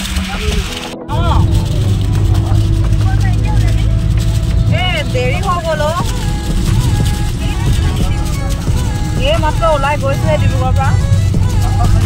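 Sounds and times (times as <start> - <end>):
car engine and road noise: 0.0 - 12.0
faint voices: 0.0 - 12.0.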